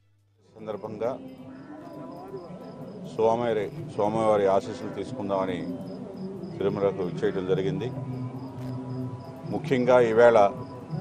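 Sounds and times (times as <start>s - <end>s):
faint high-pitched chirp: 0.6s - 11.0s
man speaking: 3.1s - 5.8s, 6.6s - 8.0s, 9.5s - 10.7s.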